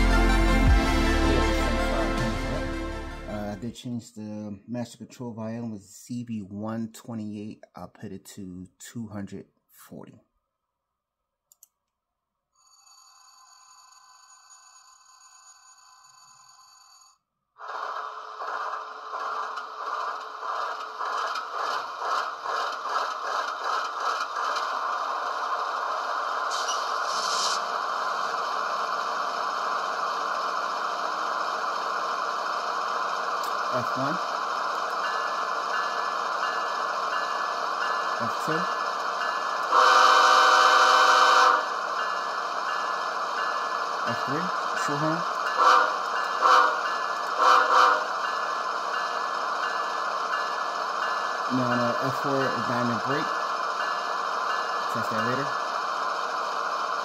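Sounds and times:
air horn blast: 0:39.7 - 0:41.6, 0:45.6 - 0:48.1.

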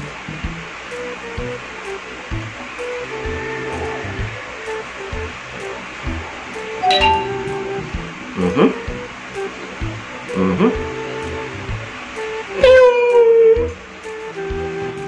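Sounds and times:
instrumental music with steady beat: 0:06.8 - 0:08.0.

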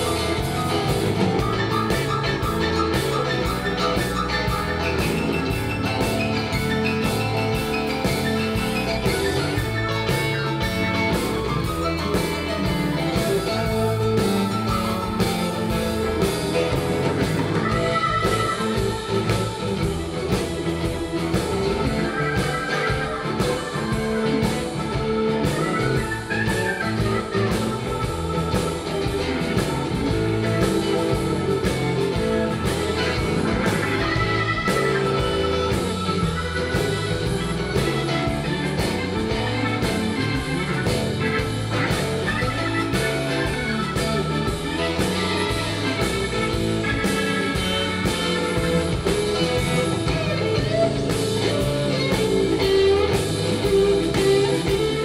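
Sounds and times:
blues-rock guitar: 0:00.0 - 0:55.0
steady drum beat: 0:00.0 - 0:55.0.

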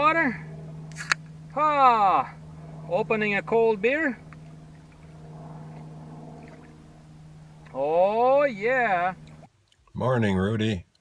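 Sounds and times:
steady low hum: 0:00.0 - 0:10.9
person speaking: 0:07.7 - 0:09.3.

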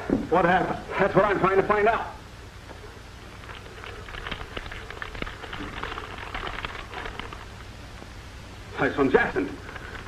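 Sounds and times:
stiff paper rustling and crackling: 0:03.3 - 0:07.7.

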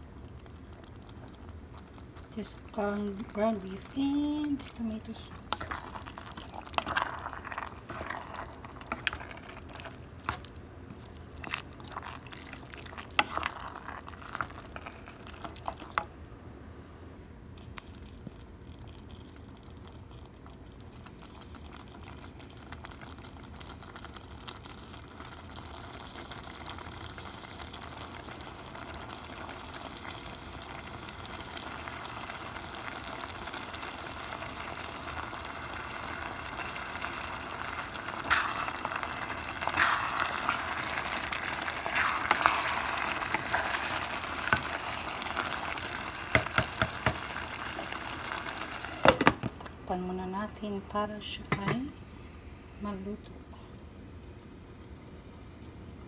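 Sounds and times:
sauce sizzling and bubbling in a pot: 0:00.0 - 0:56.0.

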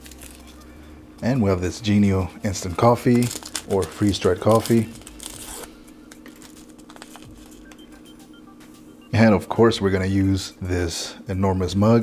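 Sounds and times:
coffee packet tearing: 0:00.0 - 0:00.7, 0:02.7 - 0:07.7
low steady hum: 0:00.0 - 0:12.0.

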